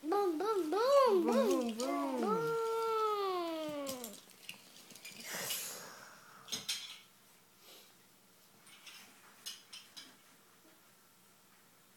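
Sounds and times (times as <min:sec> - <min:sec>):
child's voice sliding down: 0:00.0 - 0:04.2.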